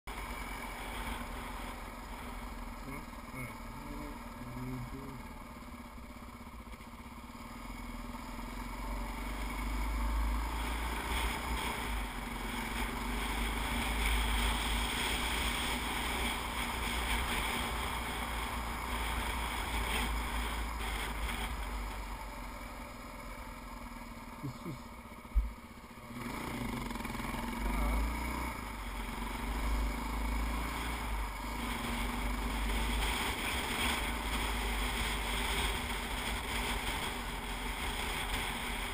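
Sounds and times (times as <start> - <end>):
dirt bike engine running: 0.1 - 38.9.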